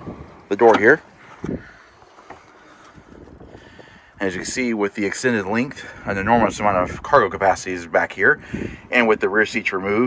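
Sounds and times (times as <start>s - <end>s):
faint wind on microphone: 0.0s - 10.0s.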